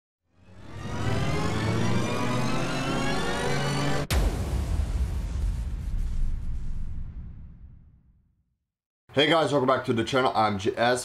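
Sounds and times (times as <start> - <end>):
tones gliding upward: 0.4 - 4.1.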